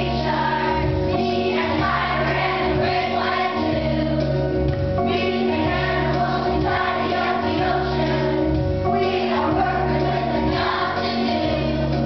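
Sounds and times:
children's choir singing: 0:00.0 - 0:04.4, 0:05.0 - 0:12.0.

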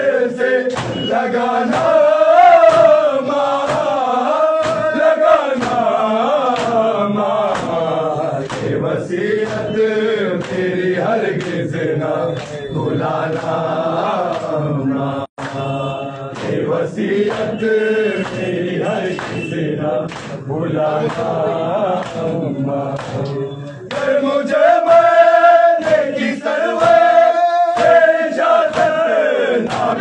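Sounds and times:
men chanting in unison: 0:00.0 - 0:30.0
hands slapping chests: 0:00.7 - 0:11.8, 0:12.4 - 0:13.6, 0:14.2 - 0:14.6, 0:16.2 - 0:17.6, 0:18.2 - 0:22.4, 0:23.0 - 0:30.0.

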